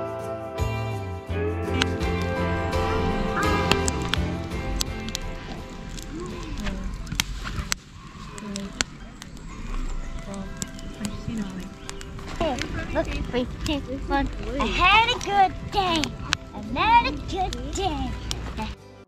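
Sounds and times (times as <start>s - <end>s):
background music: 0.0s - 19.0s
children's voices: 1.7s - 18.8s
wood fire crackling: 1.7s - 19.0s.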